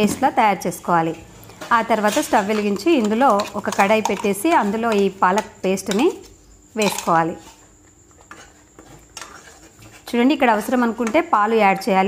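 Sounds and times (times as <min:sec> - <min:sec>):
spoon scraping and clicking on pan: 0:02.0 - 0:10.2.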